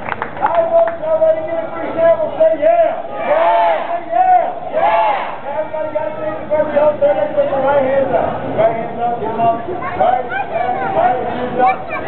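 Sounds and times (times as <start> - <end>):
loud shouted calls: 2.7 - 5.9.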